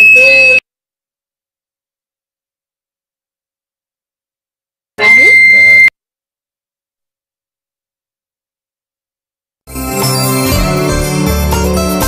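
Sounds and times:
high electronic beep: 0:05.0 - 0:05.9.

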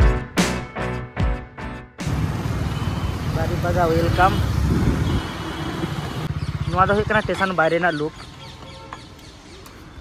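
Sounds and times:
motorcycle engine running: 0:02.0 - 0:07.9
road noise: 0:02.0 - 0:10.0.

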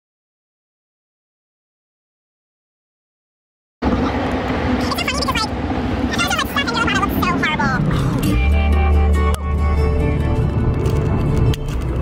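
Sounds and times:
car cabin road noise: 0:03.8 - 0:12.0
women talking: 0:04.8 - 0:05.5, 0:06.1 - 0:07.9.

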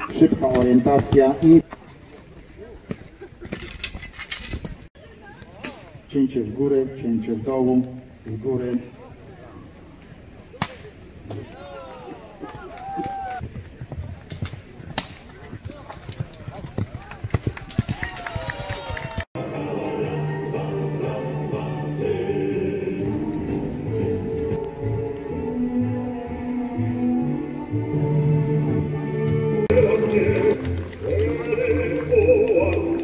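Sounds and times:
hoof and tack clicks: 0:12.1 - 0:19.2
horse galloping on grass: 0:12.4 - 0:19.2
background music: 0:19.4 - 0:33.0
onlookers talking: 0:29.7 - 0:33.0.

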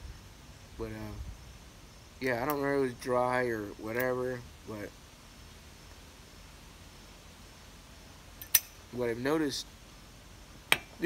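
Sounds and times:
sharp click: 0:08.4 - 0:08.8.

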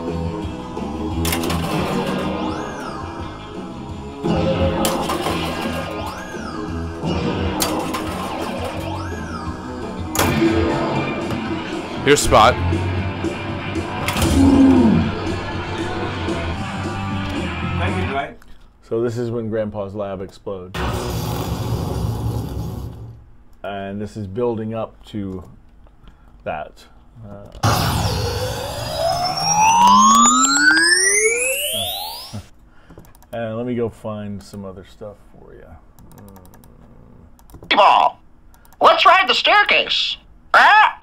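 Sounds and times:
guitar rock music from pinball machine: 0:00.0 - 0:18.2, 0:27.6 - 0:32.4
sharp pinball hits: 0:01.2 - 0:02.9, 0:04.3 - 0:11.7
explosion sound effect: 0:27.6 - 0:32.5
swooping rise-and-fall tone: 0:27.6 - 0:32.5.

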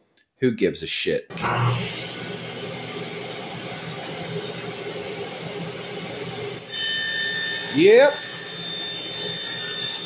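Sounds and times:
table saw whining: 0:01.3 - 0:10.0.

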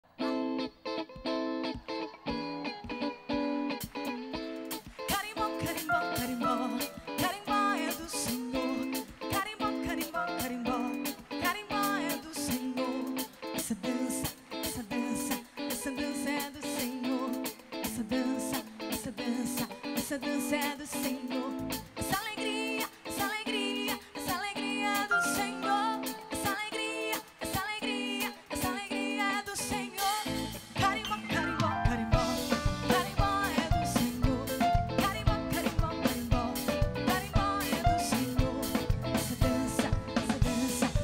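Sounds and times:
brisk percussion rhythm: 0:30.4 - 0:41.0.

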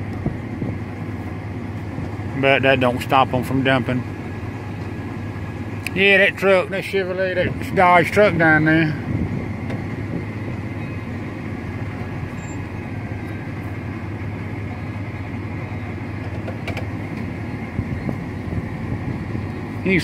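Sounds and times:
vehicle engine at low revs: 0:00.0 - 0:20.0.

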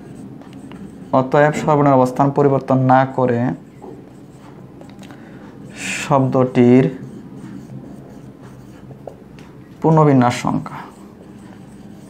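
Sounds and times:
writing strokes scratching: 0:00.0 - 0:12.0.

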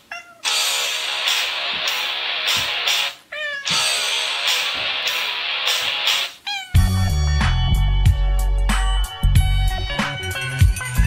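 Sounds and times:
cat meowing: 0:00.0 - 0:00.8, 0:03.0 - 0:04.8, 0:06.1 - 0:06.9
hissy music with a beat: 0:00.5 - 0:03.2, 0:03.8 - 0:11.0
heavy bass music: 0:06.8 - 0:11.0.

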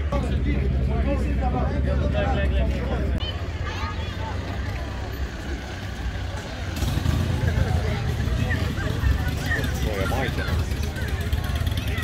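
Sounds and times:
crowd chatter: 0:00.0 - 0:12.0
car engine rumbling past: 0:05.3 - 0:12.0.

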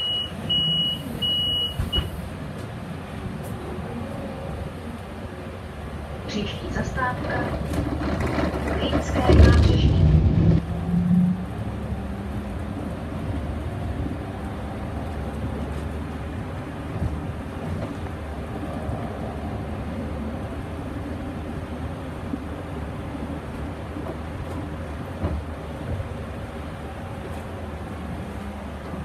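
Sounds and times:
bus engine and tyres droning: 0:00.0 - 0:29.0
voices: 0:06.3 - 0:07.9, 0:08.5 - 0:10.2.

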